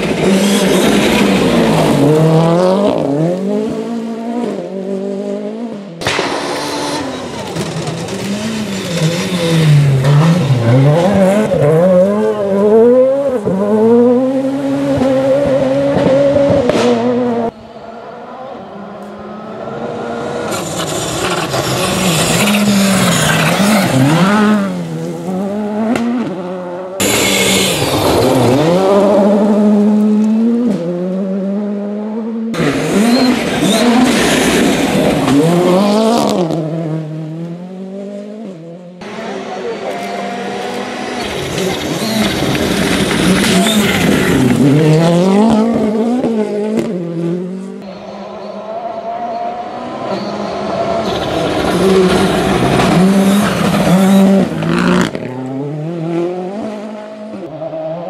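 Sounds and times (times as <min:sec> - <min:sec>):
rally car engines passing: 0:00.0 - 0:58.0.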